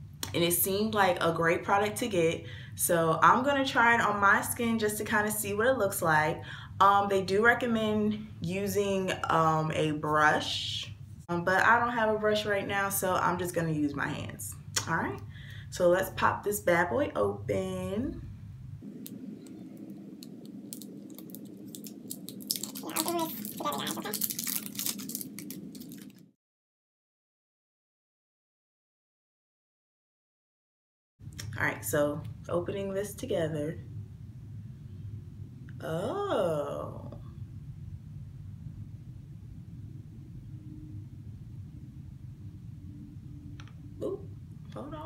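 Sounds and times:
low background rumble: 0.0 - 26.4, 31.2 - 45.0.

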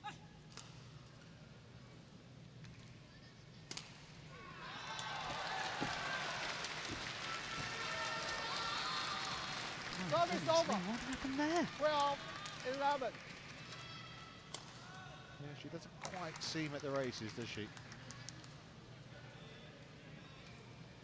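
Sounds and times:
crowd cheering and shouting: 4.5 - 6.4, 7.3 - 11.7.

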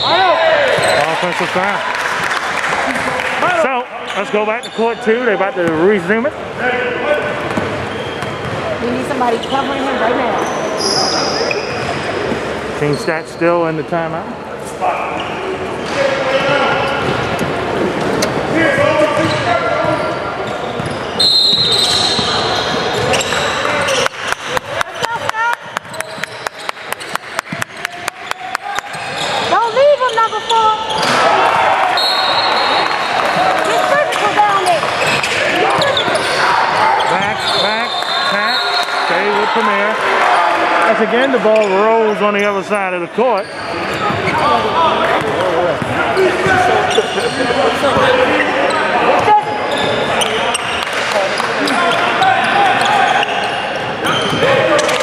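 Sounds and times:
voices echoing in gym: 0.0 - 55.0
short high squeaks: 20.4 - 24.1.

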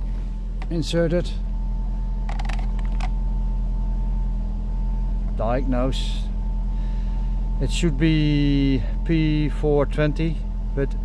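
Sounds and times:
car engine idling: 0.0 - 11.0
thin steady whine: 0.0 - 11.0
plastic scanner clicks and creaks: 2.3 - 3.1.

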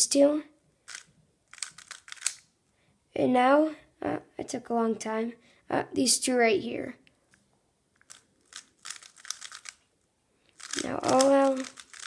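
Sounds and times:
puzzle cube plastic clicks: 0.9 - 2.5, 8.0 - 9.8, 10.5 - 12.0.

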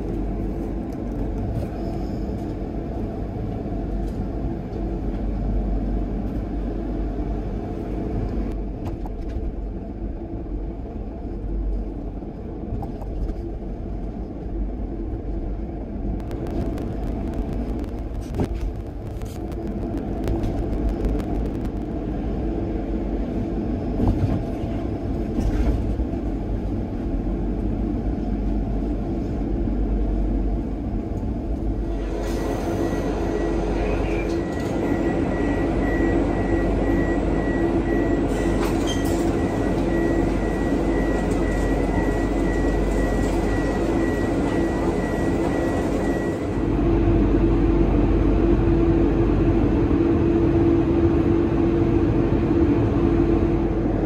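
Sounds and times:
car engine and tyre rumble: 0.0 - 54.0
steady hum with high whine: 0.0 - 54.0.

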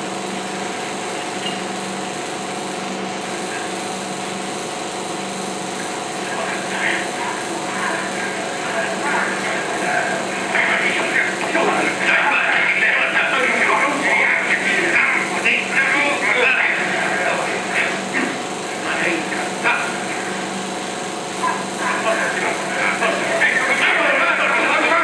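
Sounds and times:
film projector whirring: 0.0 - 25.0
indistinct voices: 6.2 - 20.5, 21.4 - 25.0.

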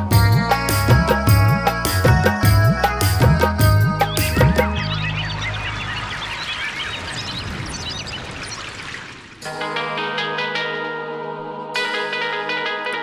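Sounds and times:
song with drum beat: 0.0 - 4.8
birds chirping: 3.5 - 9.4
flowing water: 4.8 - 9.5
plucked-string music: 9.5 - 13.0.

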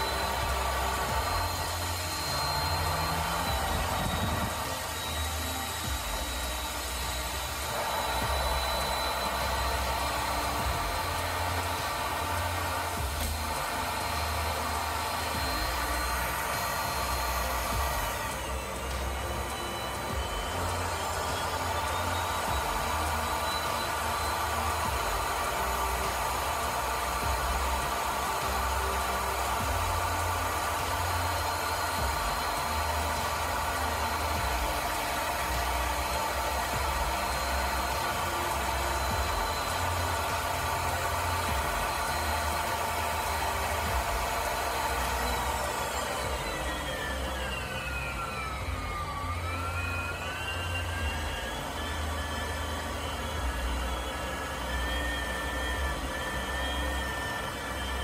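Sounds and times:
pipe threading machine running: 0.0 - 58.0.

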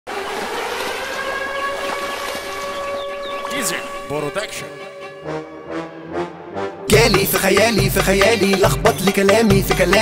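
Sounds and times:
water splashing and churning: 0.1 - 4.6.

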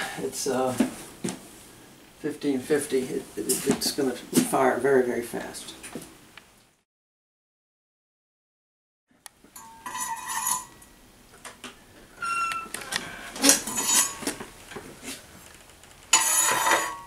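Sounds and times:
steel tools clinking and scraping: 9.6 - 10.9, 13.4 - 14.4, 16.1 - 17.0.

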